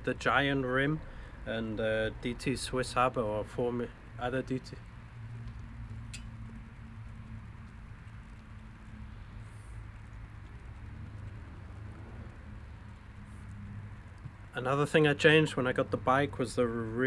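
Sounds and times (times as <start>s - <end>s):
light hiss: 0.0s - 17.0s
outdoor background hum: 0.0s - 17.0s
sharp click: 6.1s - 6.4s.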